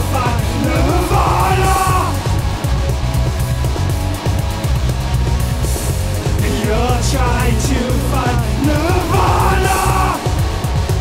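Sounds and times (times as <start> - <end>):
man yelling a vocal note: 0.0 - 2.2, 8.6 - 10.3
heavy rock band playing: 0.0 - 11.0.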